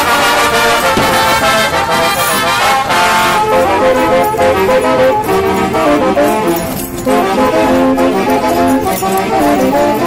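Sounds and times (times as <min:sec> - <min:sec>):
brass band playing: 0:00.0 - 0:10.0.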